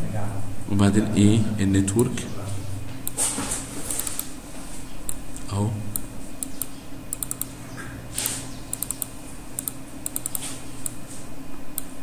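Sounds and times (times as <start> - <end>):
computer keyboard clicking: 3.9 - 4.3, 5.9 - 7.5, 8.2 - 11.0.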